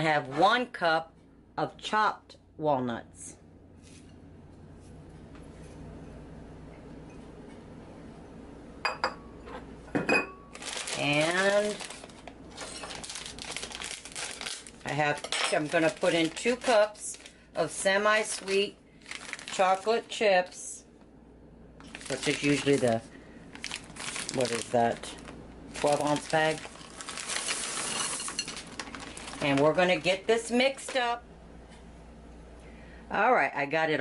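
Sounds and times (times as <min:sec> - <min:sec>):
speech: 0:00.0 - 0:03.4, 0:11.0 - 0:11.8, 0:22.1 - 0:23.1, 0:24.3 - 0:25.2, 0:29.4 - 0:31.2, 0:33.1 - 0:34.0
plastic bag crinkling: 0:10.5 - 0:20.2, 0:21.8 - 0:31.2
chocolate chips pouring into glass bowl: 0:25.8 - 0:29.5.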